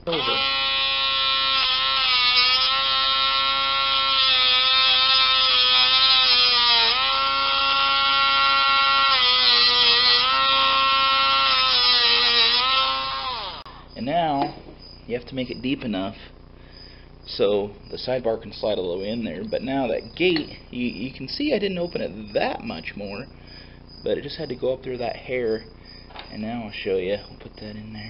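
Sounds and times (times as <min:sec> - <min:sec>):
rotary tool cutting metal: 0:00.1 - 0:13.7.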